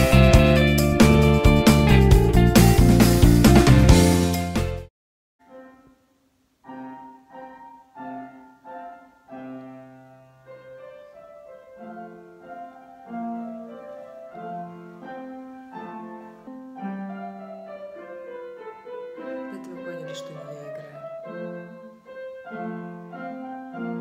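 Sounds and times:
solo piano: 0:00.0 - 0:24.0.

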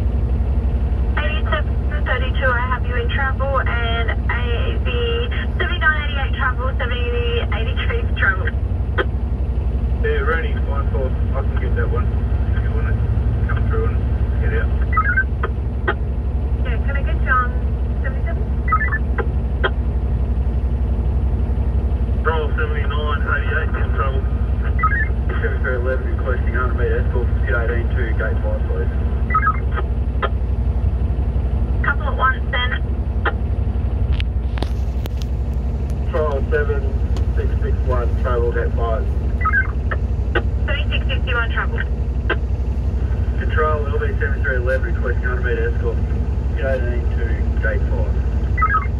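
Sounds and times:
diesel engine idling: 0:00.0 - 0:48.9
two-way radio chatter: 0:01.2 - 0:09.1, 0:10.0 - 0:16.1, 0:22.2 - 0:30.4, 0:36.1 - 0:42.4, 0:43.0 - 0:48.9.

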